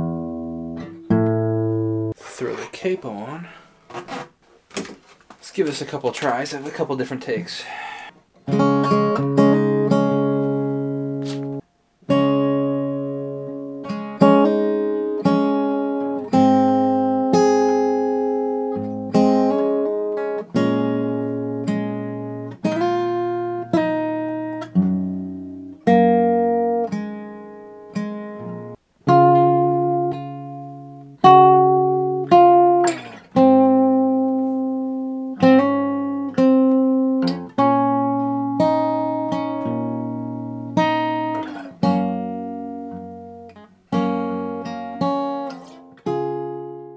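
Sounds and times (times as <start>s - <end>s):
acoustic guitar strummed chords: 0.0s - 2.5s, 8.4s - 46.9s.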